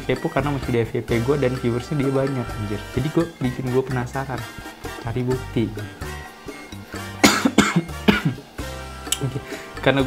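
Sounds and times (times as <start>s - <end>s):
background music: 0.0s - 10.0s
man coughing harshly: 7.0s - 8.5s.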